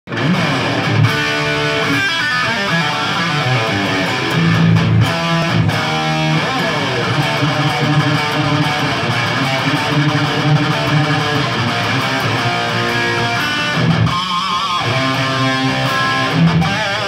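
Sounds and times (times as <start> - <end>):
electric guitar notes and chords: 0.1 - 17.0.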